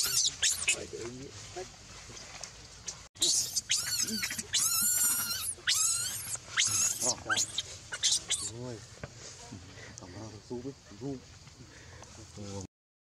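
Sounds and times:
baby monkey screaming: 0:00.0 - 0:00.8, 0:03.2 - 0:08.6.

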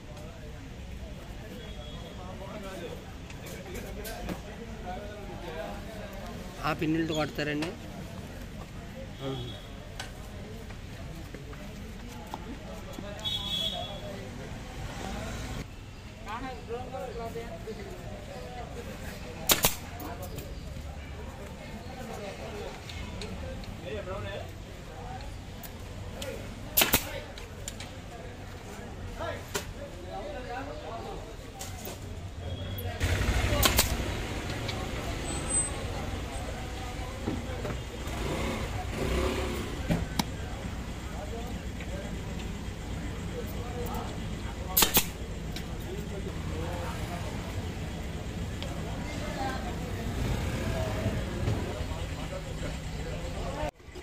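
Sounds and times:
faint voices talking: 0:00.0 - 0:54.0
road traffic rumble: 0:00.0 - 0:54.0
pneumatic staple gun firing: 0:19.5 - 0:19.8, 0:26.8 - 0:27.2, 0:33.6 - 0:34.0, 0:44.8 - 0:45.2.

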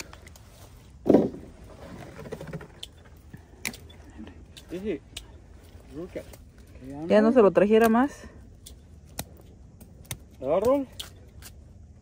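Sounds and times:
hand shears snipping: 0:07.8 - 0:11.7.

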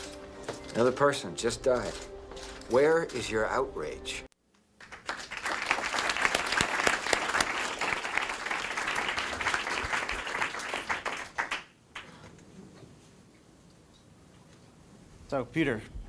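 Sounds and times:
audience applauding: 0:04.8 - 0:12.2.

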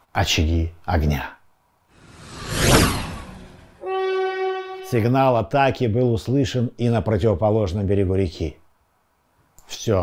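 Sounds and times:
whoosh: 0:02.0 - 0:03.9
battle horn blast: 0:03.8 - 0:05.2.

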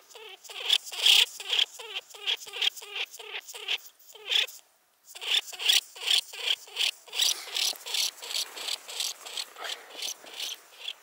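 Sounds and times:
lemming squeaking calls: 0:00.1 - 0:04.5, 0:05.1 - 0:11.0.

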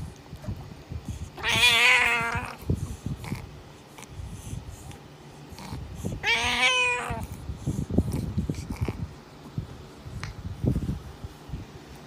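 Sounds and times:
cat meowing: 0:01.4 - 0:02.6, 0:06.2 - 0:07.3.

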